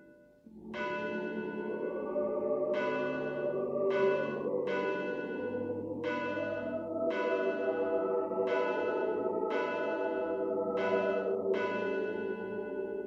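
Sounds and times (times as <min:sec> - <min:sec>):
bell tolling slowly: 0:00.0 - 0:13.0
low sustained tones: 0:00.5 - 0:13.0.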